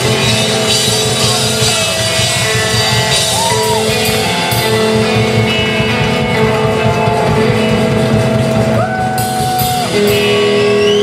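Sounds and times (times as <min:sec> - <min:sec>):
drums: 0:00.0 - 0:11.0
electric guitar sustained notes: 0:00.0 - 0:11.0
upright bass: 0:00.0 - 0:11.0.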